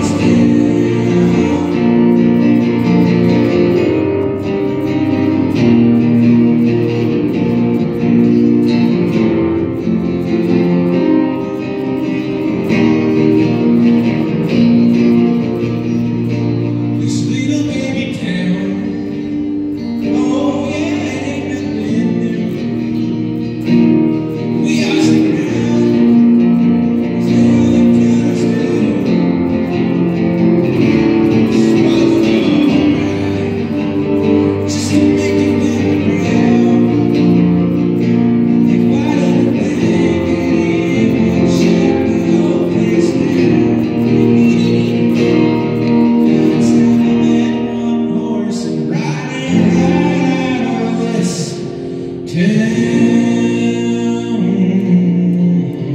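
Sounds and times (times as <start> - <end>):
acoustic guitar strumming: 0.0 - 55.9.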